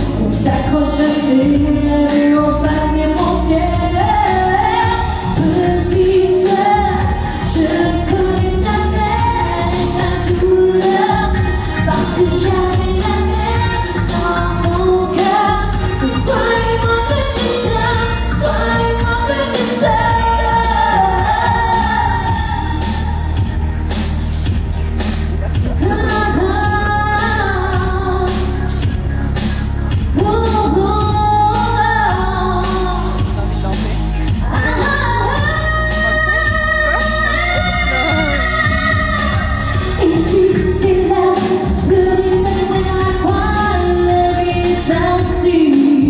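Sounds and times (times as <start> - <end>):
bass-heavy accompaniment: 0.0 - 46.0
woman singing pop song: 0.0 - 46.0.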